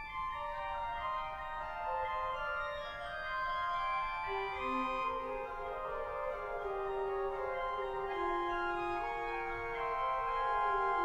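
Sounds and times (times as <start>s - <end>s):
pipe organ playing: 0.0s - 11.0s.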